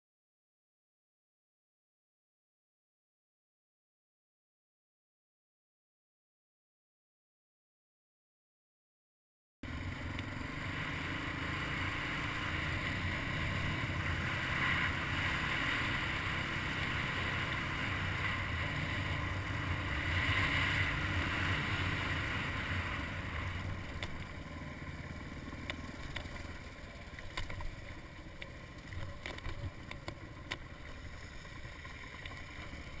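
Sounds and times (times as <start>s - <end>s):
dirt bike engine climbing: 9.6s - 33.0s.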